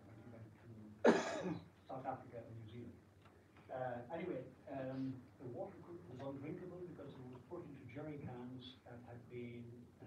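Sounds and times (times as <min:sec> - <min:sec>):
person clearing throat: 0:01.0 - 0:01.7.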